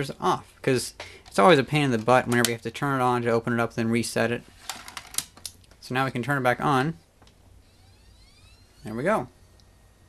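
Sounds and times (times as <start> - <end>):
dvd drive spinning up whine: 7.6 - 10.0.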